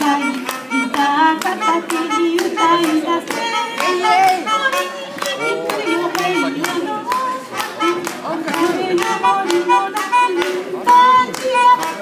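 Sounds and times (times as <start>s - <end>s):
hands clapping in time: 0.0s - 12.0s
woman singing: 0.0s - 12.0s.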